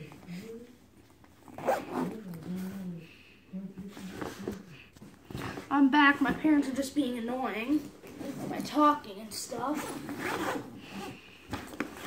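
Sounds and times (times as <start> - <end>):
zipper pulled open: 1.4 - 3.0, 8.0 - 8.6, 9.8 - 12.0.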